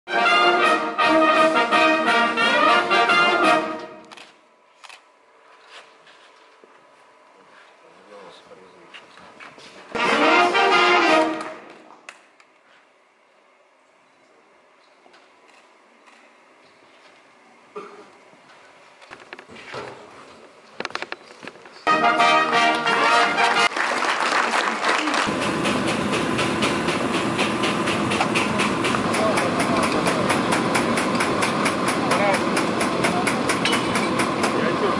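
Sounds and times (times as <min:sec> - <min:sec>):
brass band playing chords: 0:00.1 - 0:04.1, 0:10.0 - 0:11.8, 0:21.9 - 0:23.8, 0:25.3 - 0:34.9
audience clapping: 0:22.4 - 0:33.3.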